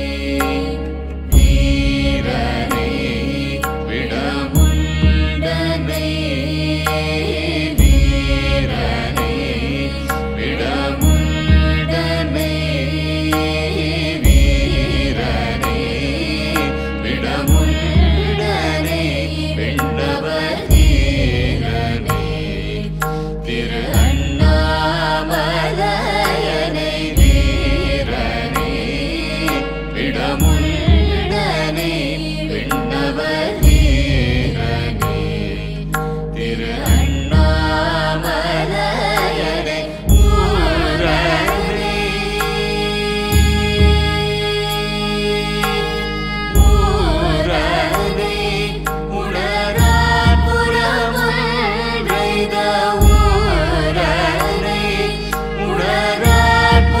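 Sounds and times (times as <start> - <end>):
chanted mantra singing: 0.0 - 57.0
steady drone: 0.0 - 57.0.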